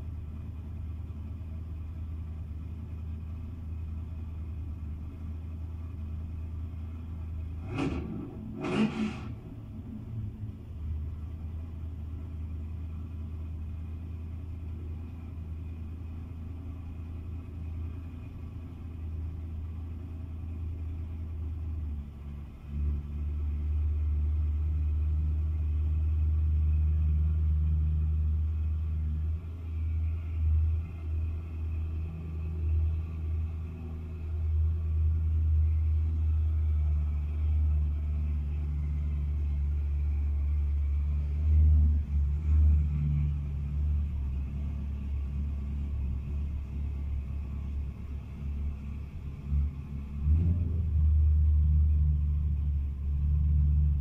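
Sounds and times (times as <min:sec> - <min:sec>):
car engine rumble on steel deck: 0:00.0 - 0:54.0.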